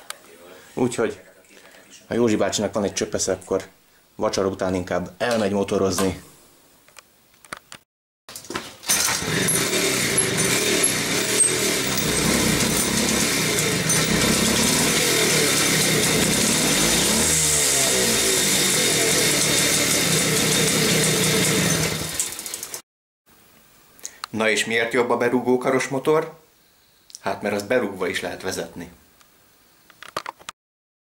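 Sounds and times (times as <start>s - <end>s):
moped two-stroke engine running: 9.0s - 22.8s.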